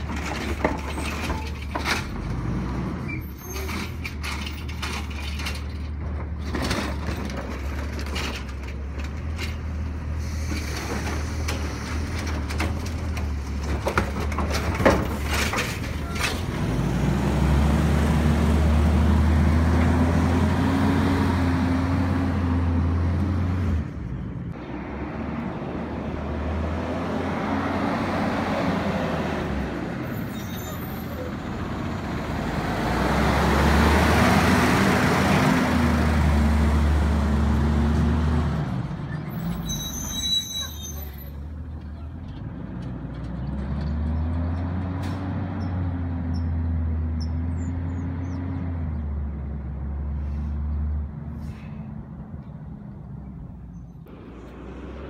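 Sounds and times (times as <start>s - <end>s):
garbage truck engine pulling away: 0.0s - 52.0s.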